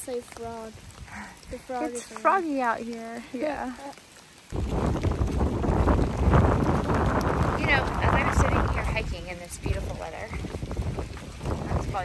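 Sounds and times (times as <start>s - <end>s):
wind buffeting microphone: 0.0s - 3.8s, 4.4s - 12.0s.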